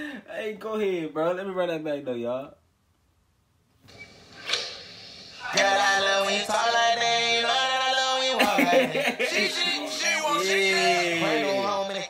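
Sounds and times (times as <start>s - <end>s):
sharp click: 3.9s - 4.8s
song: 5.4s - 12.0s.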